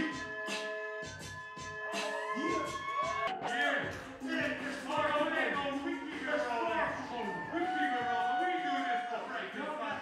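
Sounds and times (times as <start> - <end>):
hip-hop beat with percussive hits: 0.0 - 10.0.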